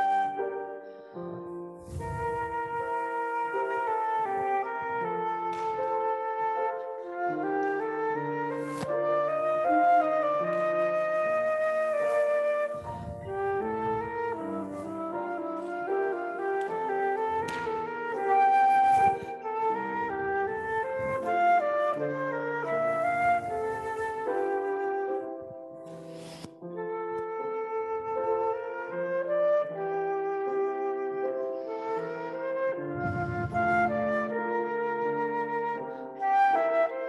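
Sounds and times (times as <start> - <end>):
flute playing a melody: 0.0 - 37.0
piano accompaniment: 0.0 - 37.0.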